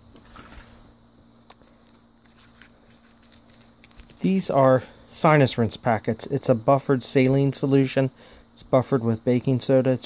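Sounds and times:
plastic packets rustling: 1.5 - 4.8.

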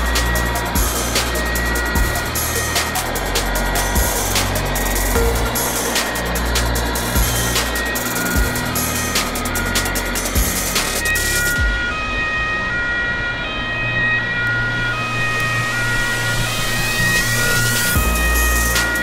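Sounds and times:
background music with a beat: 0.0 - 12.0, 16.2 - 19.0
two-tone emergency siren: 0.0 - 19.0.

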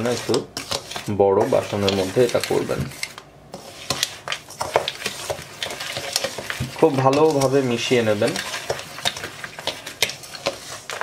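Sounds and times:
person speaking: 0.0 - 3.0, 6.6 - 8.7
metal spoon scraping bowl: 0.0 - 11.0.

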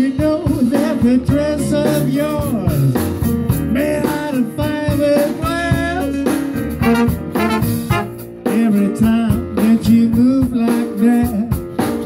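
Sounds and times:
live blues band: 0.0 - 12.0
horn section playing: 6.8 - 8.4.

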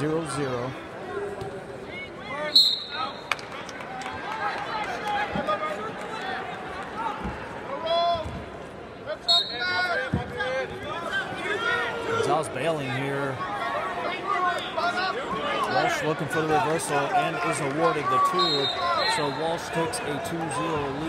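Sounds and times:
shrill referee's whistle: 2.5 - 3.2, 9.3 - 9.8, 18.4 - 19.4
crowd and coaches shouting: 9.0 - 21.0.

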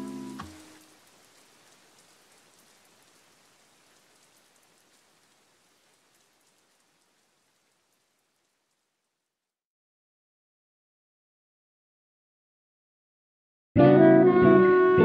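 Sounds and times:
faint rain hiss: 0.0 - 9.6
lofi music note: 13.8 - 15.0.

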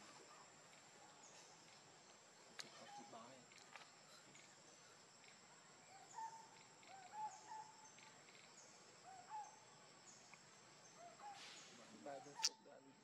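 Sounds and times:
insect drone: 0.0 - 12.6
soft animal calls: 5.9 - 8.2, 9.0 - 9.8, 10.9 - 13.0.

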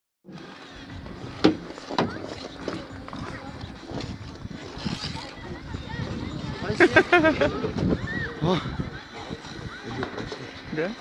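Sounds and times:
steady hum of activity: 0.3 - 11.0
skaters' voices: 0.4 - 11.0.

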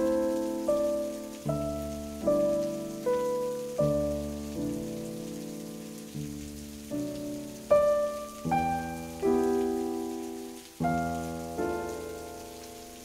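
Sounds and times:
faint steady hiss: 0.0 - 13.0
slow piano music: 0.0 - 13.0.

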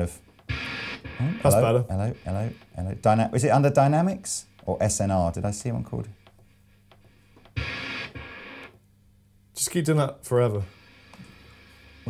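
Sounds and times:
distorted electric guitar burst: 0.5 - 2.2.

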